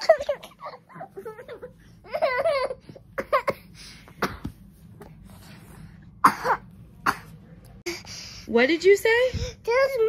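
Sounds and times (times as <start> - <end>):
person coughing: 6.2 - 7.3.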